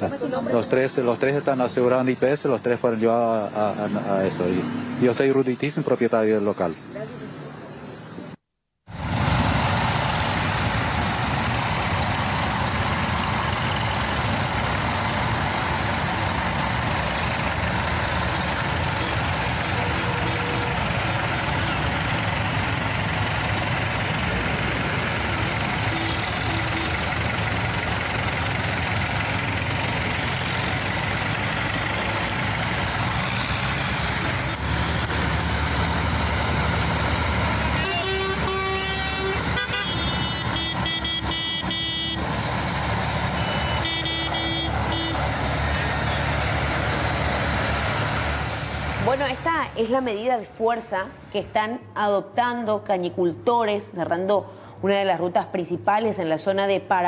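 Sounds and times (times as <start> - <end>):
tractor and truck engines rumbling: 0.0 - 57.0
vehicle horns honking: 18.3 - 22.0, 25.4 - 27.3, 37.6 - 42.3, 43.2 - 46.4.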